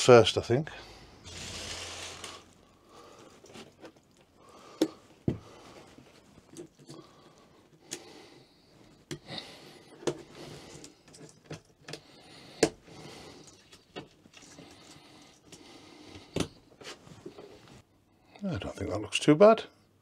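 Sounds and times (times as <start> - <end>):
curtain fabric rustling: 1.2 - 2.6.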